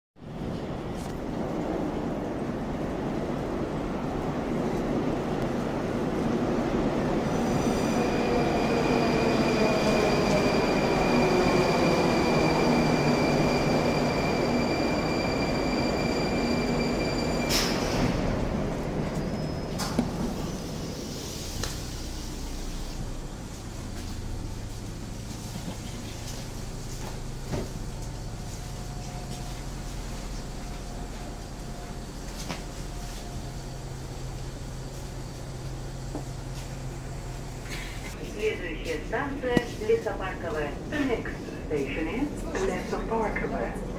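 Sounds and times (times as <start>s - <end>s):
train braking to a stop: 7.2s - 23.3s
high squeal: 7.8s - 18.4s, 19.0s - 21.2s.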